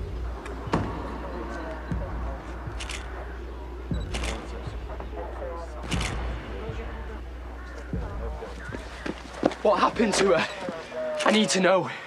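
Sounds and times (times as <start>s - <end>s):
camera shutter double click: 4.1s - 4.5s, 5.8s - 6.2s.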